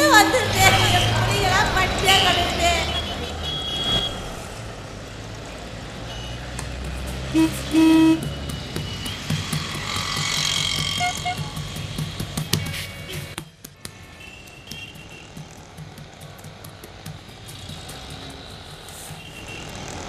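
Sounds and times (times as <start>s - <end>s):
busy road traffic: 0.0s - 20.0s
vehicle horn toots: 2.2s - 4.5s, 7.3s - 9.3s, 10.9s - 11.6s, 12.5s - 13.4s, 14.1s - 15.4s.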